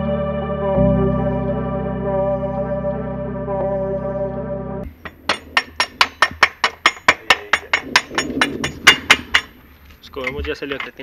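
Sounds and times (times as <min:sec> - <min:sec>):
background music: 0:00.0 - 0:05.0
hammer tapping metal axle: 0:04.9 - 0:11.0.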